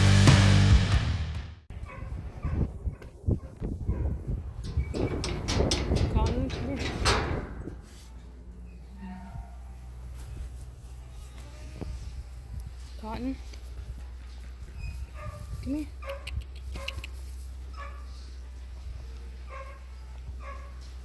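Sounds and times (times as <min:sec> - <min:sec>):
metal gate latch clanking: 0:04.6 - 0:07.9.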